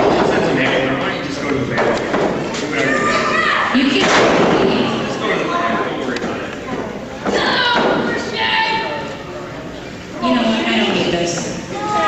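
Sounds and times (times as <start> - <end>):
crowd voices and shouting: 0.0 - 12.0.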